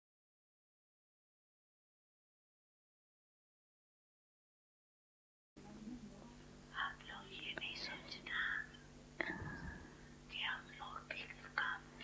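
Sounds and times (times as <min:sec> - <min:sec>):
whispery voice speaking: 0:05.6 - 0:09.5, 0:10.3 - 0:12.0
low electrical hum: 0:05.6 - 0:12.0.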